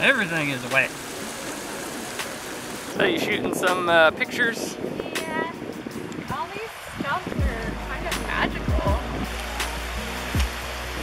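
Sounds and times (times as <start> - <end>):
rain falling: 0.0 - 3.8, 6.1 - 11.0.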